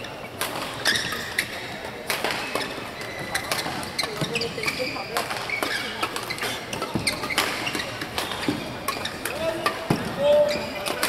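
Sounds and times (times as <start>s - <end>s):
shoes squeaking on court: 0.0s - 11.0s
rackets hitting shuttlecock: 0.4s - 11.0s.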